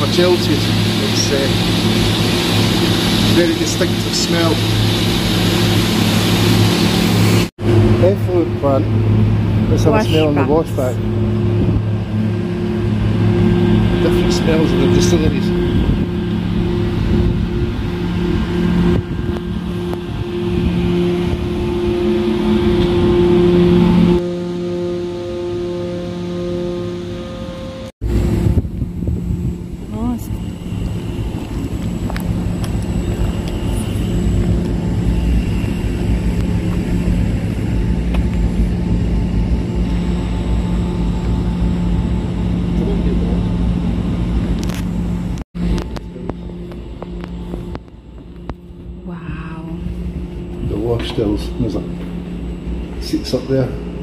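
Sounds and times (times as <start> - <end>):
loud mechanical hum: 0.0 - 54.0
steady tones: 0.0 - 54.0.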